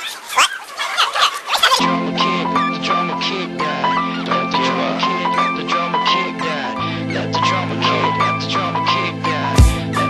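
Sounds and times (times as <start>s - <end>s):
music with low chord and high note: 1.8s - 10.0s.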